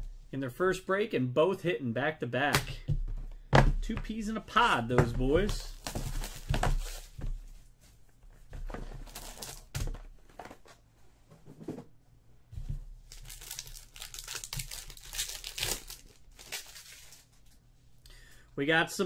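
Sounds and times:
packaging crinkling and tearing: 0:09.0 - 0:09.7, 0:13.1 - 0:17.3.

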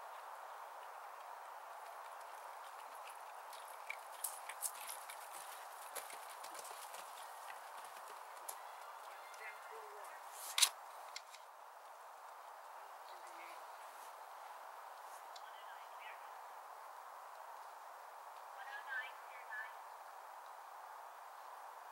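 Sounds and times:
horse hoofbeats on dirt: 0:00.0 - 0:10.3.

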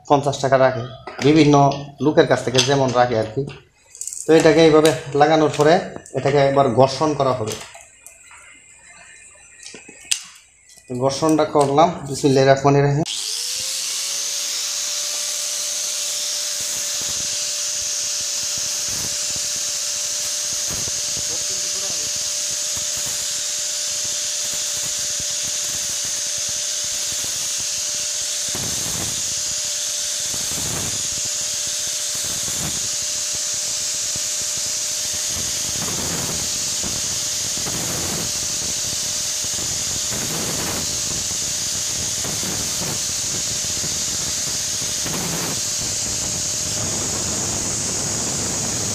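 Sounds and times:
angle grinder running: 0:00.4 - 0:48.9.

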